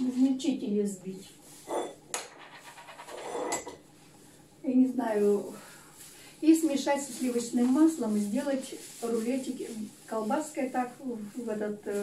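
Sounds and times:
breathing: 5.5s - 6.4s.

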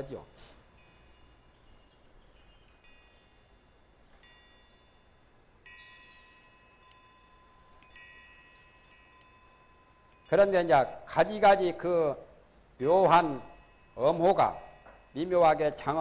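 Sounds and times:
faint chime tones: 0.0s - 11.2s, 12.8s - 16.0s.

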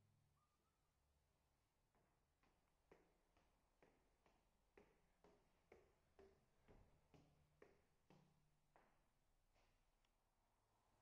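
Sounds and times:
footsteps on wooden stairs: 2.8s - 8.4s.

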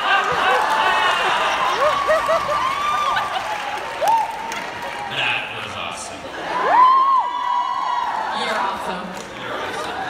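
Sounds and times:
audience clapping: 0.0s - 6.0s, 6.6s - 10.0s
whoops and shouts: 0.2s - 4.6s, 6.4s - 8.4s.

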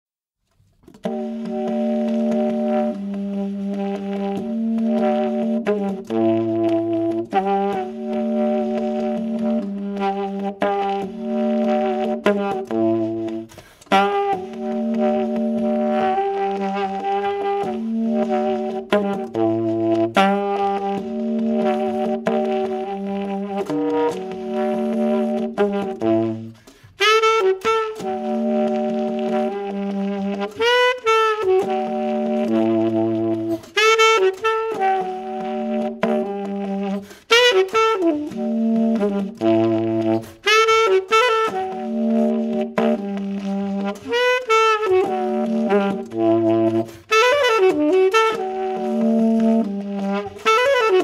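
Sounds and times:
jazz saxophone chords: 0.5s - 51.0s.

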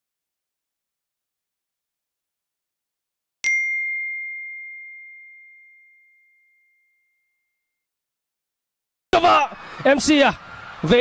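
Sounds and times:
bell-like ding: 3.4s - 7.8s.

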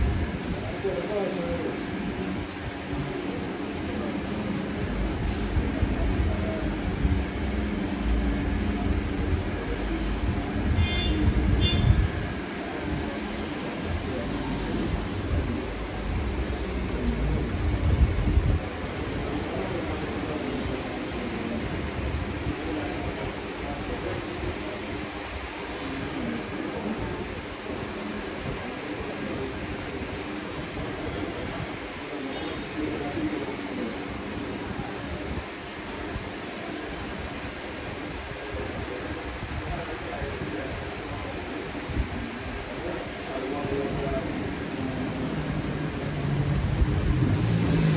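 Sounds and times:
shop hum: 0.0s - 47.9s.

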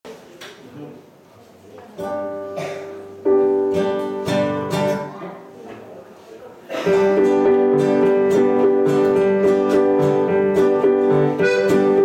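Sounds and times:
acoustic guitar: 1.8s - 6.0s, 6.7s - 12.0s
digital piano: 2.4s - 5.2s, 6.9s - 12.0s
accordion: 7.3s - 12.0s.

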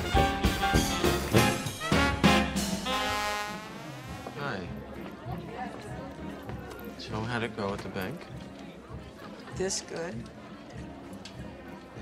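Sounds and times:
low indistinct voices: 3.0s - 12.0s.

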